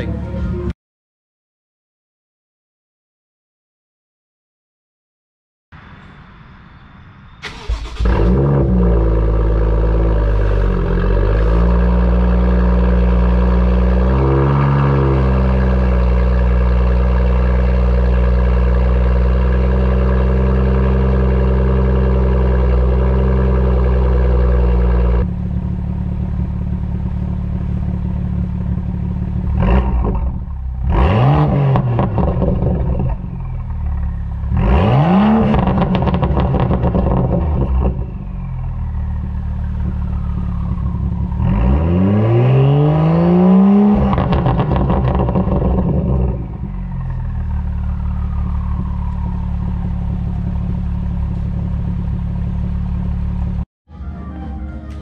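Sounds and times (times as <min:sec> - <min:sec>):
car engine idling and revving: 0:00.0 - 0:00.8, 0:07.4 - 0:53.7.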